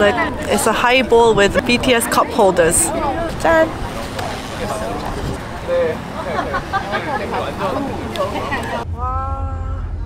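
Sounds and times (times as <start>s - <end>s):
wind rumble on microphone: 0.0s - 5.6s
people chatting: 0.0s - 9.8s.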